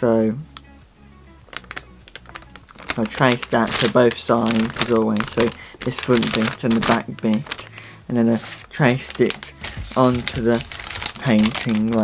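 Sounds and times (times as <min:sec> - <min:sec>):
tracing paper crinkling: 0:01.5 - 0:12.0.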